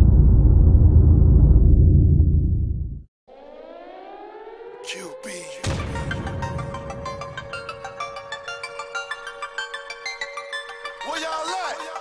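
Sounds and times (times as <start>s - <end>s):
loud low rumble: 0.0s - 3.1s
siren-like wail: 3.3s - 9.8s.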